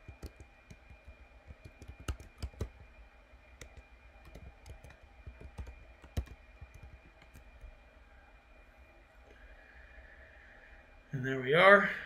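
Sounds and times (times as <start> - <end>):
keyboard typing clicks: 0.0 - 2.8, 3.6 - 7.7.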